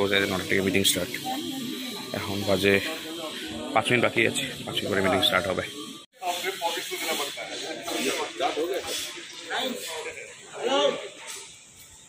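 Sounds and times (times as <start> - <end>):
people talking: 0.0 - 11.6
hiss: 6.2 - 10.3.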